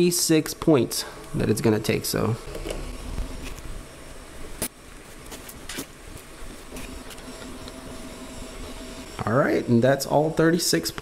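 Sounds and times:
stepper motors humming: 0.0 - 11.0.

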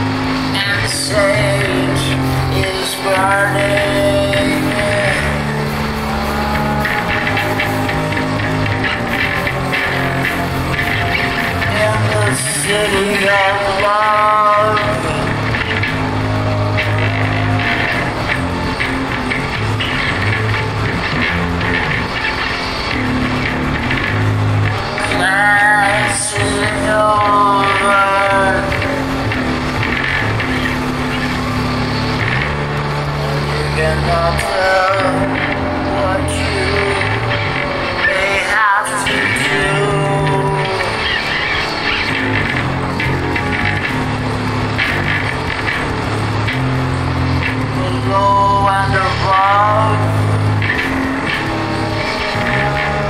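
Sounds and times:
rock drum beat: 0.0 - 47.8
bass line: 0.0 - 53.0
person singing: 0.0 - 53.0.

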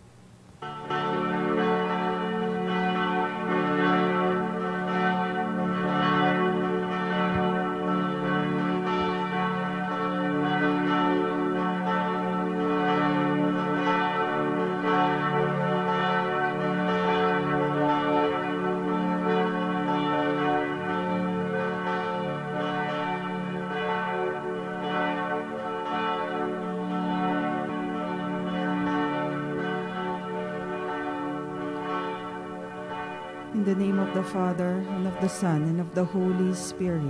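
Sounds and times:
church bells ringing: 0.6 - 37.0.

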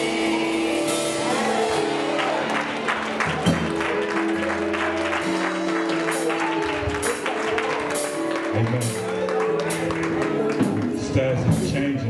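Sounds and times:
keyboard chords: 0.0 - 12.0
congregation clapping: 0.2 - 11.7.

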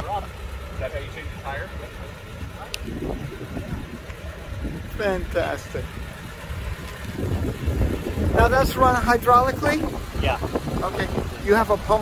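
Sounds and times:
faint voices talking: 0.0 - 6.8
engine idling low rumble: 0.0 - 12.0.

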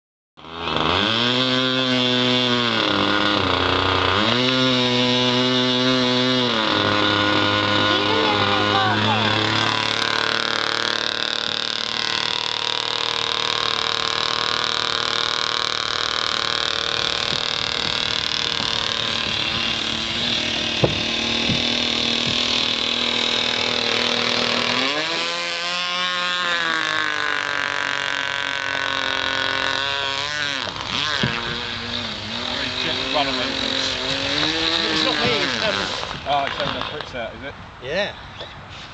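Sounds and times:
model boat engine revving: 0.4 - 37.4.

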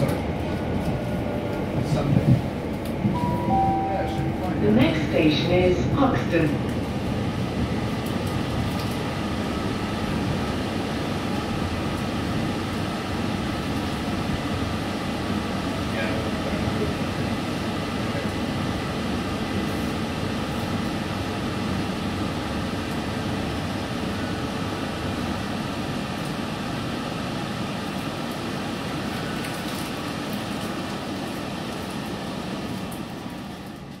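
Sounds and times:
train wheels rumbling on rails: 0.0 - 34.0.

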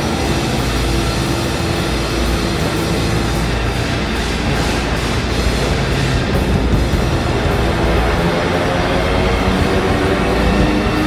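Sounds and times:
motorcycle engine at speed: 0.0 - 11.0
wind noise: 0.0 - 11.0.

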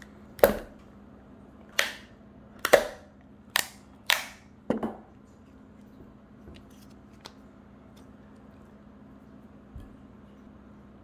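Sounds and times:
stiff plastic snapping and popping: 1.7 - 4.4.

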